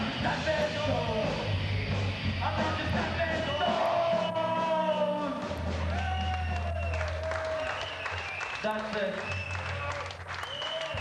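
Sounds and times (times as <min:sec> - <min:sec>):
live band playing: 0:00.0 - 0:09.8
crowd shouting and clapping: 0:03.6 - 0:11.0.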